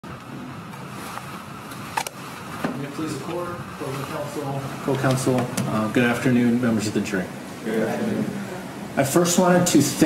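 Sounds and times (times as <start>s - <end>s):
faint room murmur: 0.3s - 10.0s.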